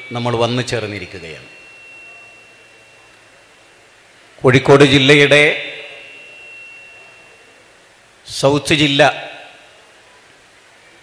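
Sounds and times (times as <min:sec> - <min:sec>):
high ringing tone: 0:00.0 - 0:11.0
low hiss: 0:00.0 - 0:11.0.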